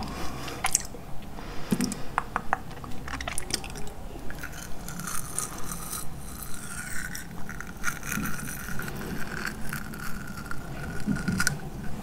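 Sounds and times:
mouth nibbling brush bristles: 3.1s - 12.0s.

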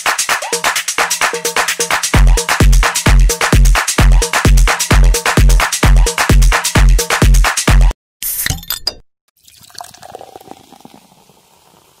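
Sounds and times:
glass clinking: 8.5s - 11.4s
drink pouring into glass: 9.4s - 12.0s.

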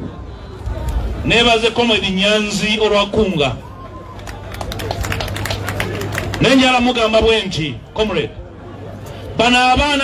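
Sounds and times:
scattered hand clapping: 4.2s - 6.7s.

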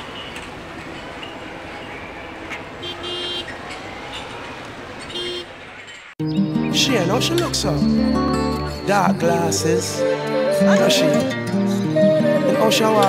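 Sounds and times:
street traffic: 0.0s - 13.0s
car horn toots: 2.8s - 4.3s, 5.1s - 5.6s.

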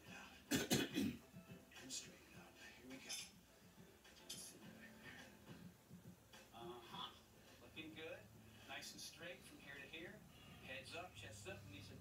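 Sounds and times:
person coughing: 0.5s - 1.2s.

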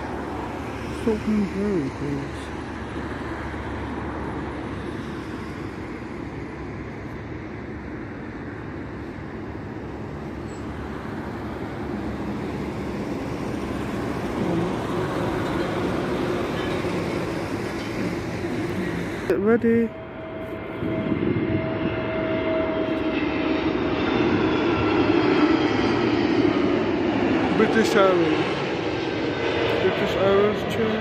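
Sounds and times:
jet airliner rumble: 0.0s - 31.0s.

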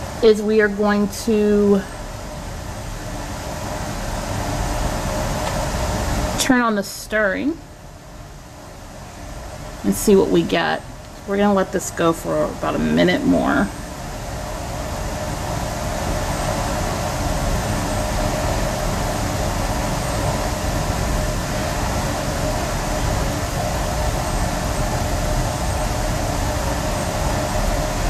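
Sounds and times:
rumbling lab machine: 0.0s - 28.0s.

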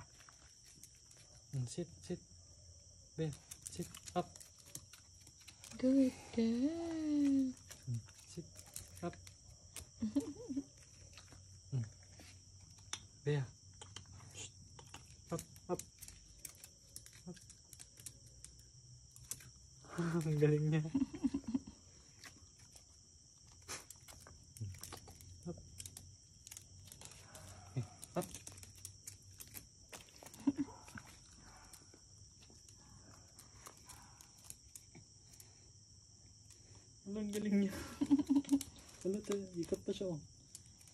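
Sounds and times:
insects chirring: 0.0s - 40.9s
dog claws tapping on concrete: 3.3s - 5.8s, 12.2s - 19.6s, 22.2s - 35.4s.

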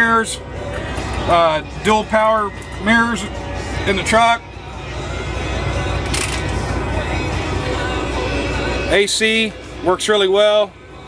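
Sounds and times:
air-conditioning blower running: 0.0s - 11.0s.

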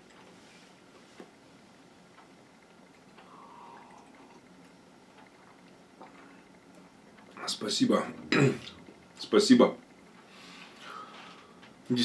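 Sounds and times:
person sipping and swallowing: 3.2s - 4.4s.

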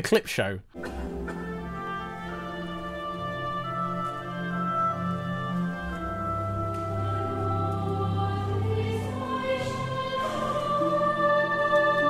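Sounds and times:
choir singing with orchestra: 0.8s - 12.0s.

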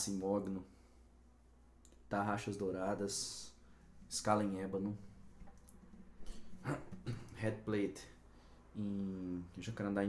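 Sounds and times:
steady low hum: 0.0s - 10.0s
man speaking: 2.1s - 5.1s, 6.6s - 8.2s, 8.8s - 10.0s.

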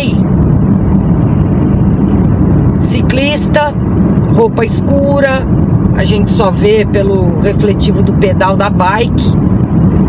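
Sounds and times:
car engine and tyre noise: 0.0s - 10.0s.

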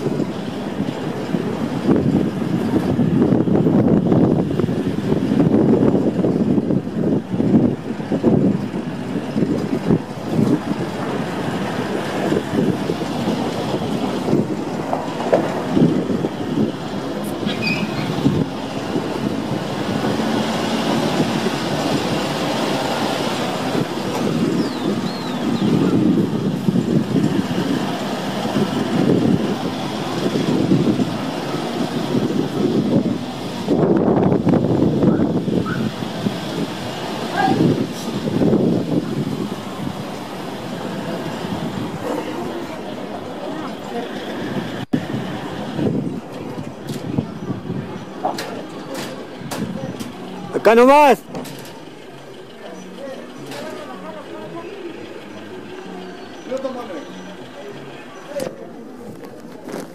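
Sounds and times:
vehicle body rattling over bumps: 0.0s - 59.9s
vehicle engine running: 51.2s - 59.9s.

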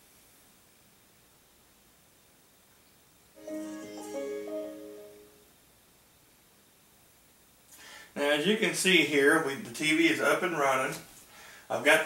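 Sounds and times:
tv power-on chime: 3.4s - 5.5s.

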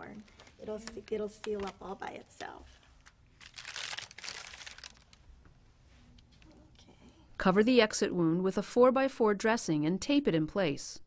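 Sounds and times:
packaging crinkling and tearing: 3.0s - 5.2s.

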